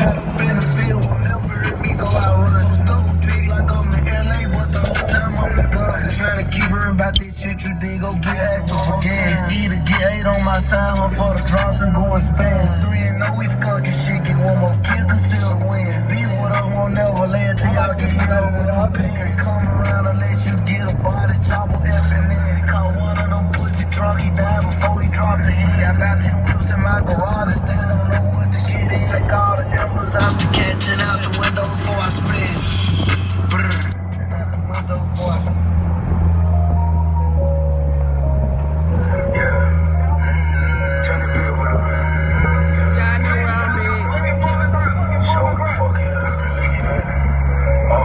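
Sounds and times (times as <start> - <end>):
rap music from car stereo: 0.0 - 48.0
vehicle engine: 0.0 - 48.0
loud rush of noise: 29.0 - 34.0.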